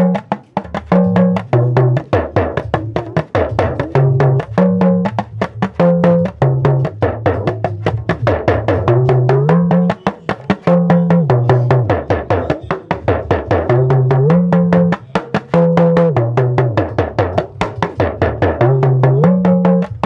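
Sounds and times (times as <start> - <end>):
talking drum pitch bending: 0.0 - 20.0.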